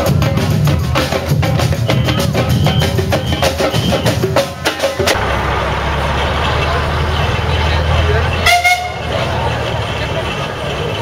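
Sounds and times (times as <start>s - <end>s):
crowd chatter: 0.0s - 11.0s
steam whistle toot: 8.4s - 9.1s.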